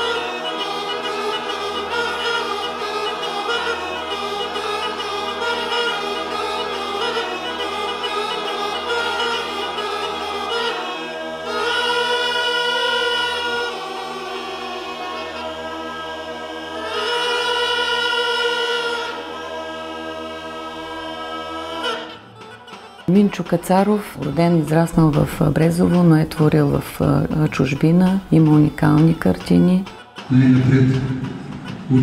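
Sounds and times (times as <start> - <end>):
choir singing held chords: 0.0 - 32.0.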